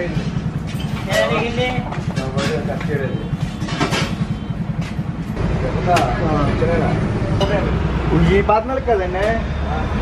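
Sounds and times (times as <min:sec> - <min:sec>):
people talking: 0:01.0 - 0:03.3, 0:05.4 - 0:10.0.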